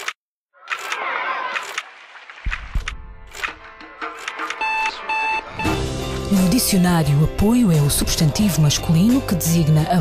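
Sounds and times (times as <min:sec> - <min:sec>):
background music: 0:02.5 - 0:10.0
electronic beeps: 0:04.5 - 0:05.8.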